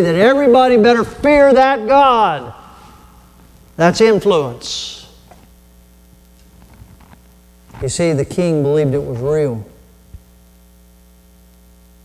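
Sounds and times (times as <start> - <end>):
man's voice: 0.0 - 2.8, 3.8 - 5.2, 7.8 - 9.8
low electrical mains hum: 0.0 - 12.0.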